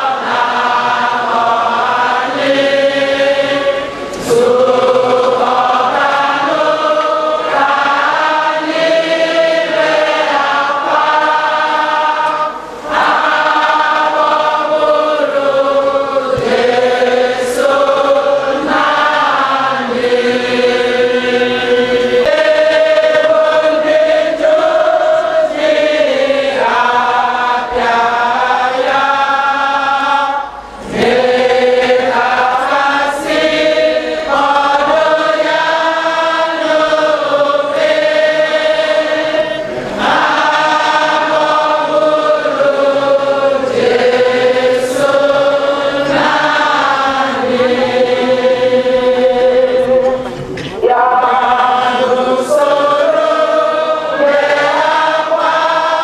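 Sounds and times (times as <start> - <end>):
crowd singing a slow hymn: 0.0 - 56.0.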